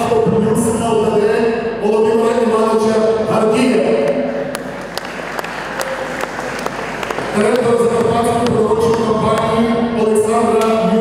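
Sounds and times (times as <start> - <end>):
crowd applauding: 4.4 - 9.5.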